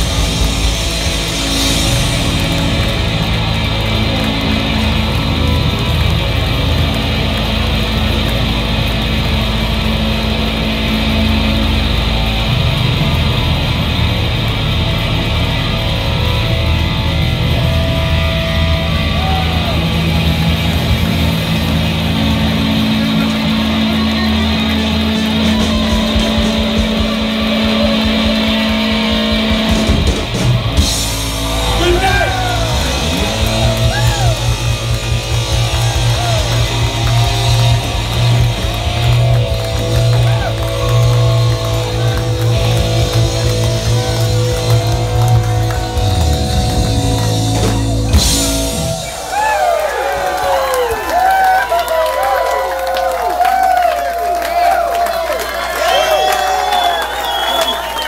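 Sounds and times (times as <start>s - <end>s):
live rock band playing: 0.0s - 52.6s.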